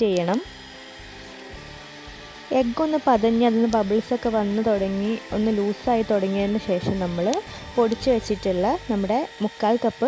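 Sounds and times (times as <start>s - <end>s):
electric hand mixer whisking: 0.0s - 10.0s.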